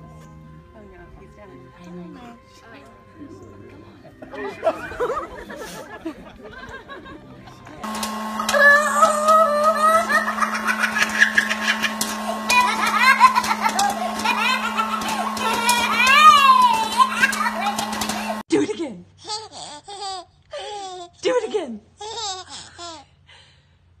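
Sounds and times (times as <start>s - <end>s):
popcorn machine humming: 2.6s - 18.5s
baby laughing: 8.5s - 18.4s, 19.2s - 21.2s, 22.0s - 23.1s
toddler laughing: 8.5s - 18.4s, 19.2s - 21.2s, 22.0s - 23.1s.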